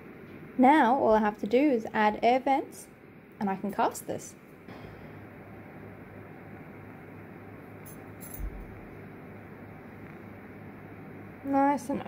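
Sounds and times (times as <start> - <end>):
faint hiss and low hum: 0.0 - 12.0
handling metal tools: 7.8 - 8.7
light metal clink: 7.8 - 8.7.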